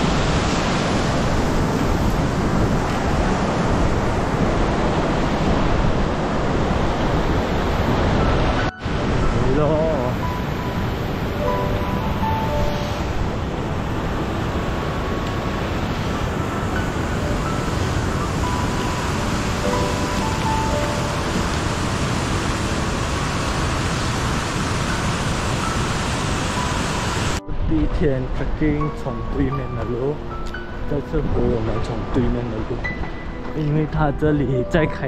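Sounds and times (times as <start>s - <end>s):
whitewater river rushing: 0.0s - 27.4s.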